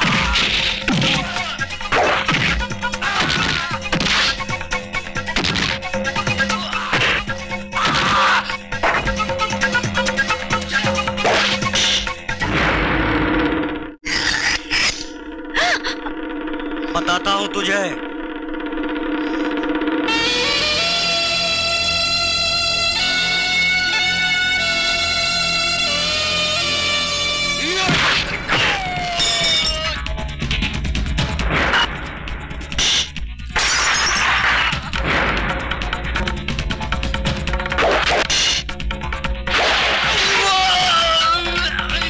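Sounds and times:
action film score with bass: 0:00.0 - 0:42.0
fight crash and smash effects: 0:12.4 - 0:13.3, 0:31.4 - 0:32.0, 0:33.6 - 0:35.7, 0:39.5 - 0:40.6
held film score note: 0:14.8 - 0:33.7
short gliding cries: 0:14.9 - 0:27.9.

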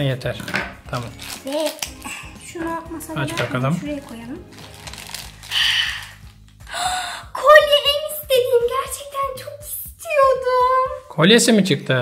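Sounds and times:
background music: 0:00.0 - 0:12.0
foil wrapper crinkling: 0:00.9 - 0:06.6.

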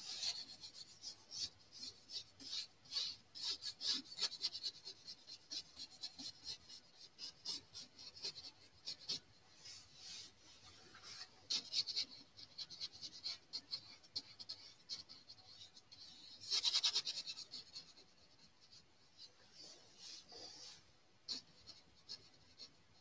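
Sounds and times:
paintbrush scrubbing on canvas: 0:00.0 - 0:12.1, 0:19.3 - 0:21.5.

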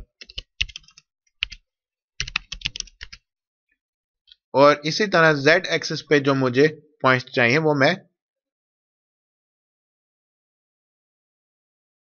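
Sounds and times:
typing on computer keyboard: 0:00.1 - 0:01.6, 0:02.2 - 0:03.2.

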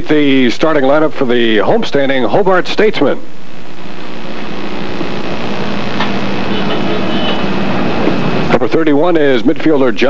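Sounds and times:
faint low hum: 0:00.8 - 0:08.8.

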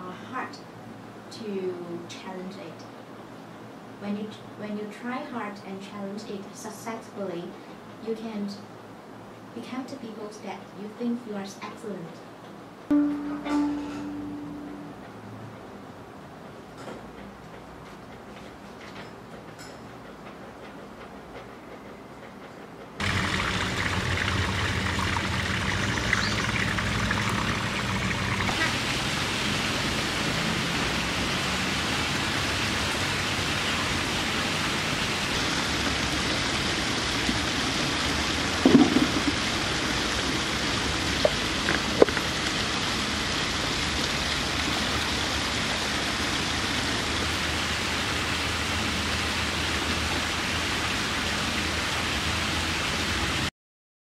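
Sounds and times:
water falling down rock cascade: 0:23.0 - 0:53.5.

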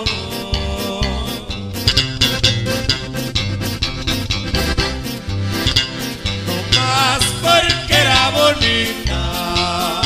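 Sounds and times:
accordion melody: 0:00.0 - 0:10.0
bass: 0:00.0 - 0:10.0
strummed guitar rhythm: 0:00.0 - 0:10.0.

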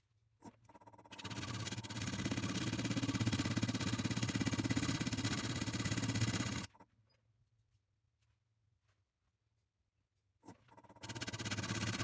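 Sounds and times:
wood lathe cutting with fast rattle: 0:00.7 - 0:06.7, 0:10.7 - 0:12.0.

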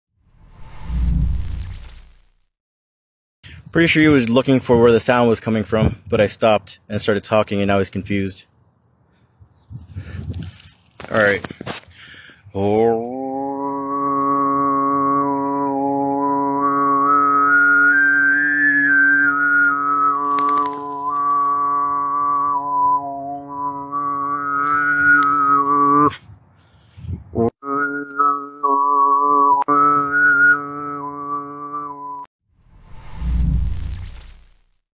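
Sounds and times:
man throat singing: 0:12.7 - 0:19.4.

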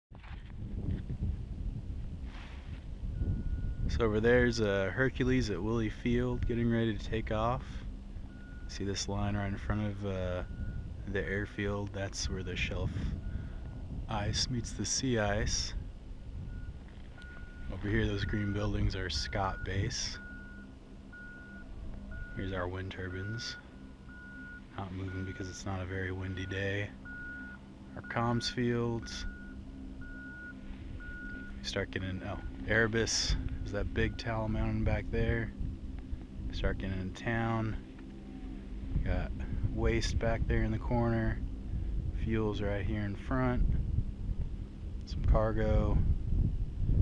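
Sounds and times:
wind buffeting microphone: 0:00.1 - 0:27.4, 0:28.3 - 0:47.0
steady low hum: 0:00.1 - 0:47.0
faint steady tone: 0:00.2 - 0:47.0
reversing alarm beeping: 0:03.1 - 0:43.7.

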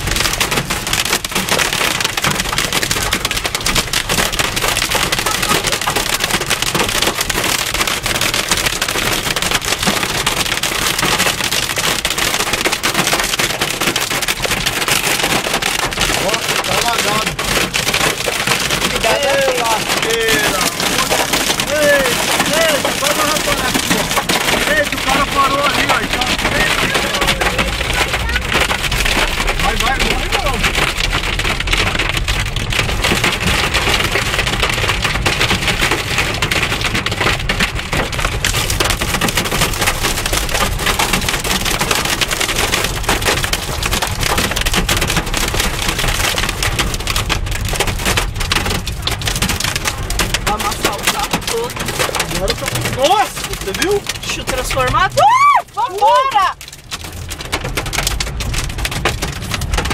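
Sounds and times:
hail and rain pelting car roof: 0:00.0 - 0:59.9.

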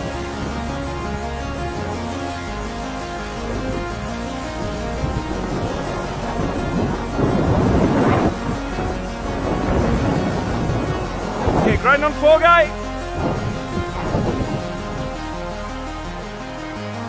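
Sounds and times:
water rushing past boat bow: 0:00.0 - 0:17.0
wind buffeting microphone: 0:00.0 - 0:17.0.

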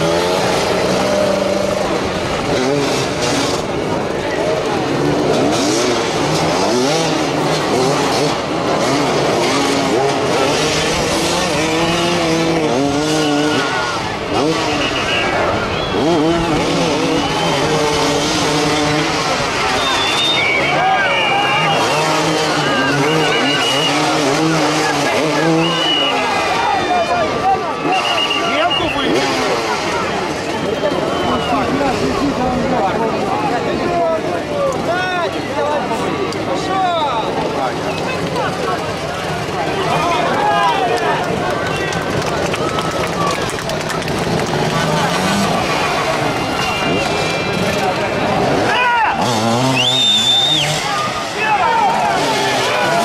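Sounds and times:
motorcycle engines revving: 0:00.0 - 0:53.0.

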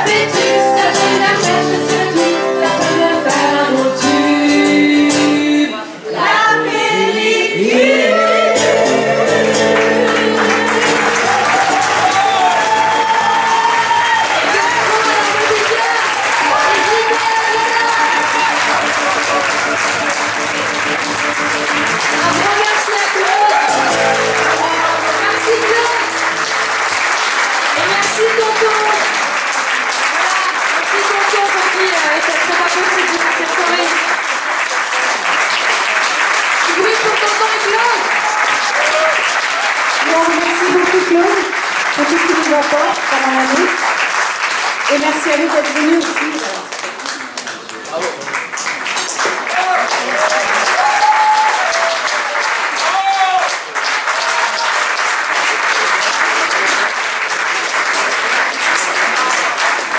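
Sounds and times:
audience applause and cheering: 0:00.0 - 0:02.0, 0:07.8 - 0:59.9
acoustic guitar: 0:00.0 - 0:06.6, 0:07.5 - 0:29.4
people shouting: 0:09.3 - 0:19.5, 0:23.2 - 0:25.3.

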